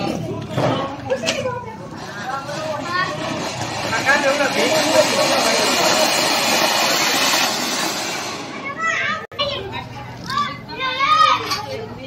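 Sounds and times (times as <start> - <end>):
firework spraying sparks hiss: 3.4 - 8.6
children's voices: 8.4 - 12.0.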